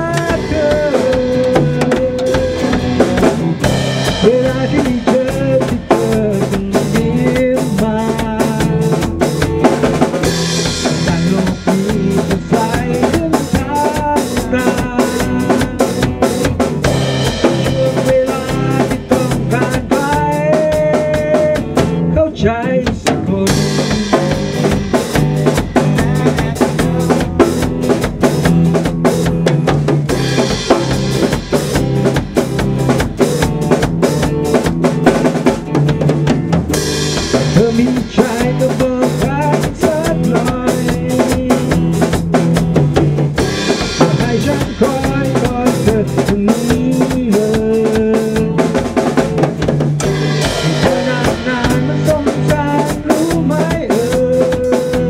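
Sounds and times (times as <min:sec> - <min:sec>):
drum beat: 0:00.0 - 0:55.0
electric guitar chords: 0:00.0 - 0:55.0.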